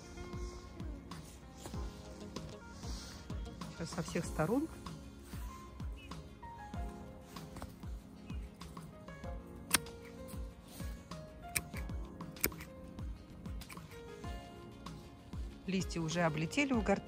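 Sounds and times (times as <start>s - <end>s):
background music with steady beat: 0.0s - 17.0s
secateurs snipping stems: 9.6s - 10.3s, 11.5s - 12.8s, 13.6s - 14.0s.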